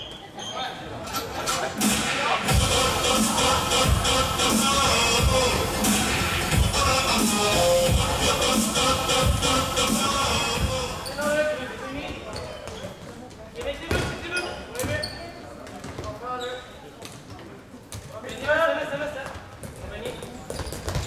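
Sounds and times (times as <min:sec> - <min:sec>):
players calling out: 0:01.5 - 0:11.8
music with a beat: 0:01.8 - 0:11.0.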